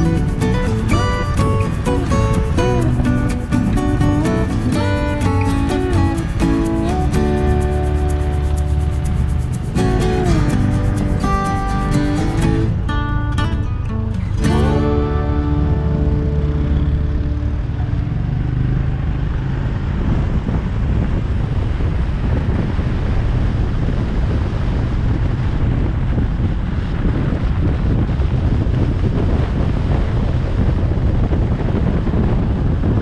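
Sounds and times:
motorbike riding noise: 0.0s - 33.0s
wind buffeting microphone: 0.0s - 33.0s.

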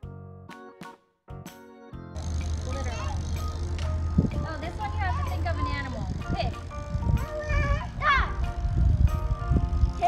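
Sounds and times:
electronic timer tune: 2.2s - 7.3s
wind buffeting microphone: 2.5s - 10.0s.

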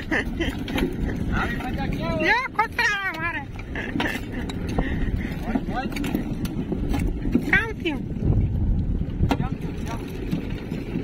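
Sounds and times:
wind buffeting microphone: 0.0s - 11.0s
voices: 1.1s - 6.3s.

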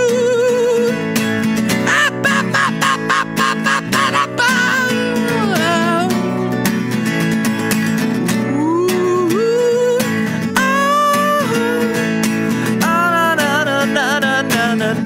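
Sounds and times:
man singing wordless sliding notes: 0.0s - 1.1s, 1.7s - 6.4s, 8.3s - 15.0s
acoustic guitar strumming: 0.0s - 15.0s.

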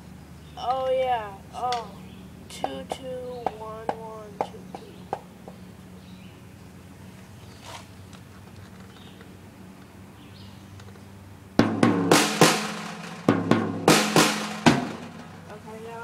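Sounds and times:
drum kit played with sticks: 11.6s - 15.4s.

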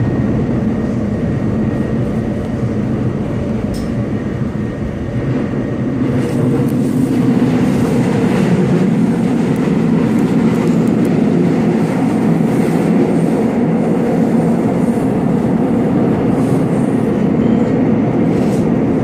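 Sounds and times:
train wheels rumbling on rails: 0.0s - 19.0s.

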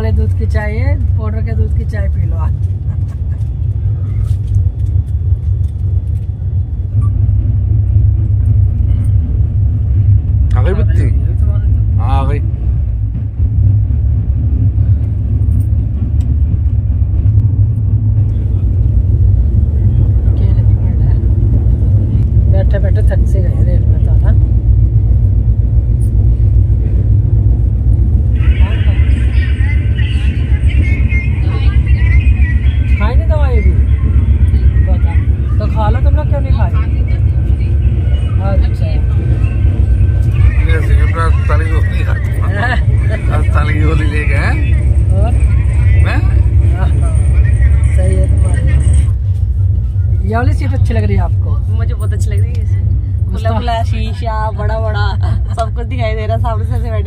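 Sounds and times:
train rumbling: 0.0s - 57.0s
faint voices: 28.2s - 50.7s.

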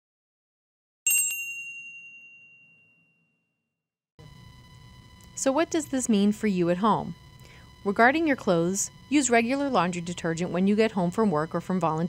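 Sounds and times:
bright bell-like chime: 1.1s - 3.6s.

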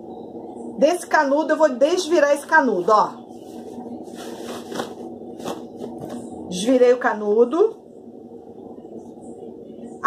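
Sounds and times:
fabric rustling and swishing: 2.9s - 6.2s.

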